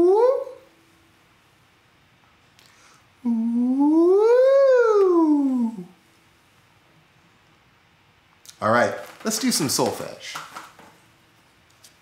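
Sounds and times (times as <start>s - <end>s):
man's vocal siren glide: 3.2s - 6.0s.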